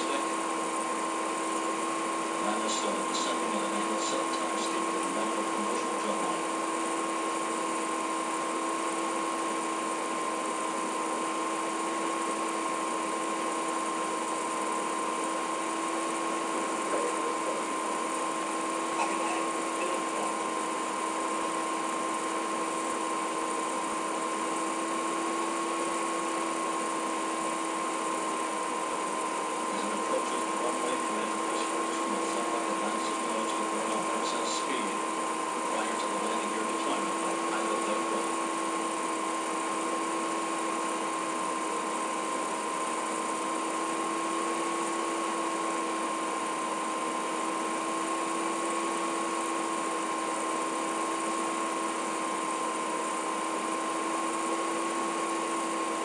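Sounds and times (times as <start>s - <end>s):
steady hum and hiss: 0.0s - 56.0s.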